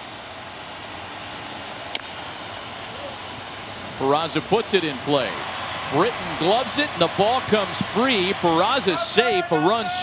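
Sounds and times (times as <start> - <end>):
ballpark background hiss: 0.0 - 10.0.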